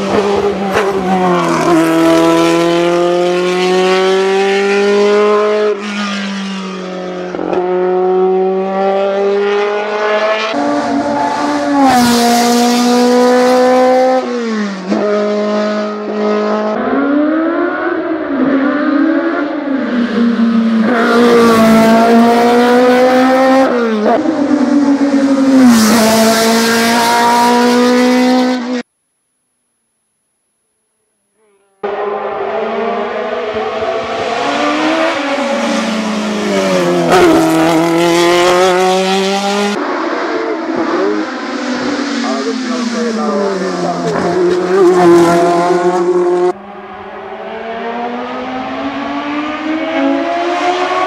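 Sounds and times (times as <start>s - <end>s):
race car engine at full throttle: 0.0s - 28.9s, 31.8s - 51.0s.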